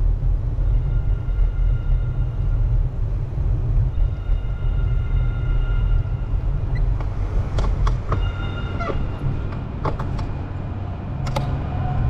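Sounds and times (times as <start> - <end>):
high squeal: 3.9 - 9.6
sharp clicks: 11.2 - 11.5.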